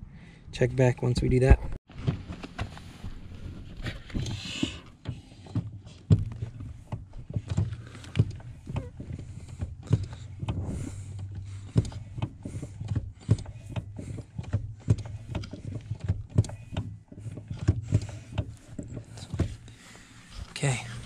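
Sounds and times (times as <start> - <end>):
brake pedal clicking and clunking: 1.9 - 21.0.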